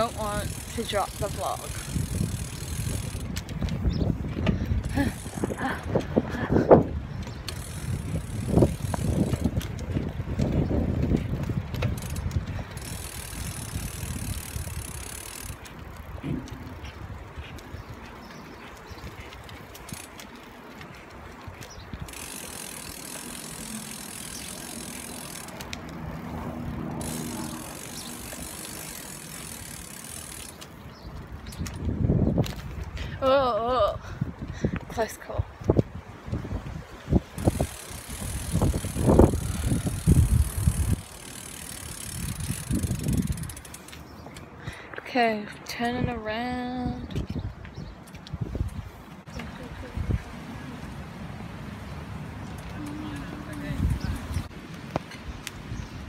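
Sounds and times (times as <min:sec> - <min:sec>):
bike rattling and knocking: 0:00.0 - 0:16.9, 0:18.3 - 0:33.0, 0:37.4 - 0:44.5
bicycle rolling on road: 0:00.0 - 0:56.0.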